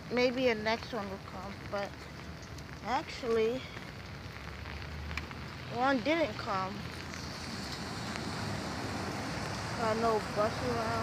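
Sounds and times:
rain hissing: 0.0 - 11.0.

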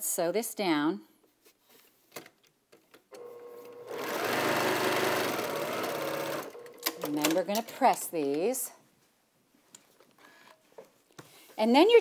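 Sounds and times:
sewing machine stitching: 3.2 - 7.4.

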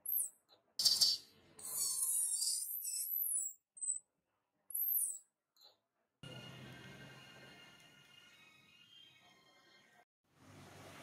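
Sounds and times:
infant monkey squealing and screaming: 1.6 - 3.0.

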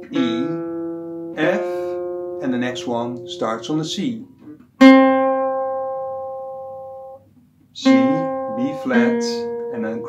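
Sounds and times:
acoustic guitar note plucked: 0.0 - 10.0.

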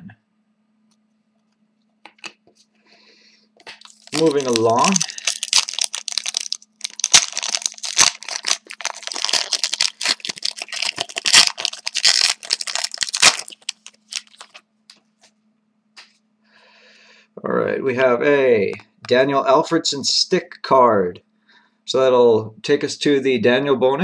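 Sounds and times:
foil wrapper tearing and crinkling: 3.8 - 14.6.

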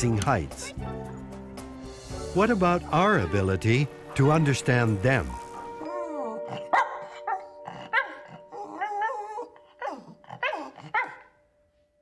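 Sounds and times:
small dog barking: 10.4 - 11.3.

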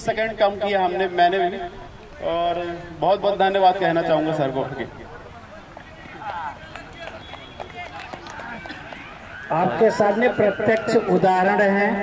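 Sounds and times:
faint voices outdoors: 0.0 - 12.0.

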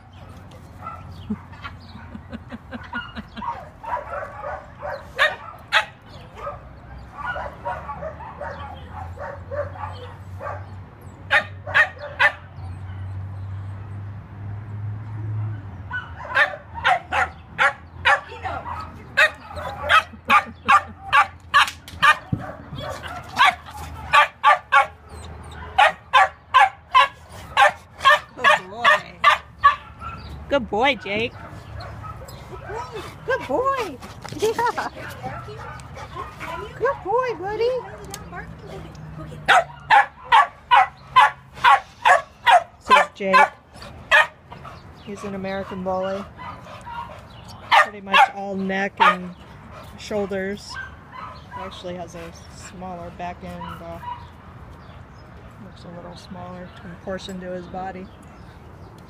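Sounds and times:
dog barking: 2.9 - 10.7, 11.3 - 13.1, 15.9 - 25.0, 25.6 - 30.3, 39.5 - 44.4, 46.4 - 48.4, 49.0 - 49.3.

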